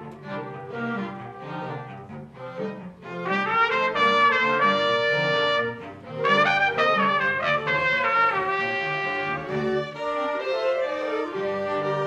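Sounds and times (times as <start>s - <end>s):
chamber orchestra playing: 0.0s - 12.0s
trumpet: 0.0s - 12.0s.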